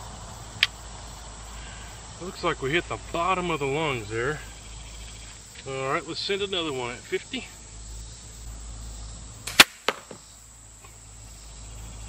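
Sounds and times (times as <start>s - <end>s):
crossbow release crack: 9.4s - 11.0s
second snap: 9.5s - 10.2s.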